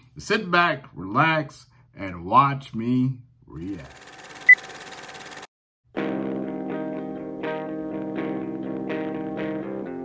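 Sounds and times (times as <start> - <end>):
film projector rattling: 3.8 - 5.5.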